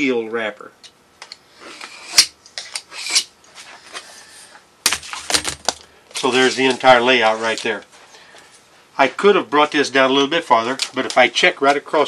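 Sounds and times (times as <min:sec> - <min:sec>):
metal scribe scratching sheet metal: 0:01.6 - 0:03.3.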